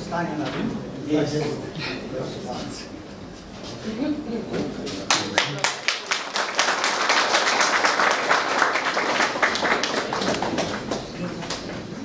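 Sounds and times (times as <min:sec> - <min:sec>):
audience applauding: 0:05.1 - 0:11.6.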